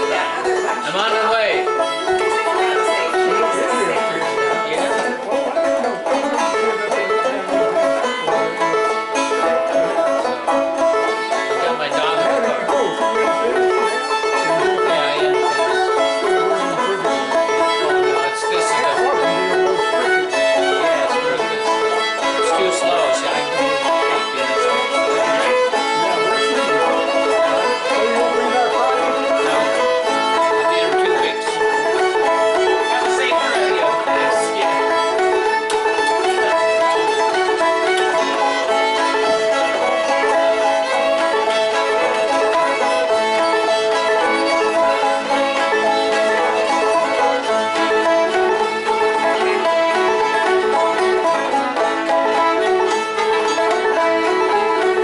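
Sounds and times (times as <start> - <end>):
banjo picking: 0.0 - 55.0
bowed fiddle melody: 0.0 - 55.0.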